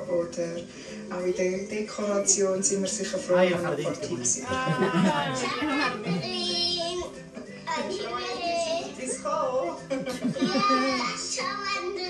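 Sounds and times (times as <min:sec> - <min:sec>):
background music: 0:00.0 - 0:12.0
child singing: 0:05.4 - 0:07.1, 0:07.7 - 0:12.0.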